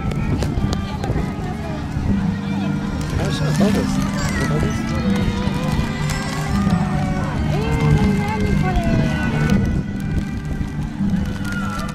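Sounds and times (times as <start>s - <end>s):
children and adults calling out: 0.0s - 11.9s
music with low bass line: 0.0s - 11.9s.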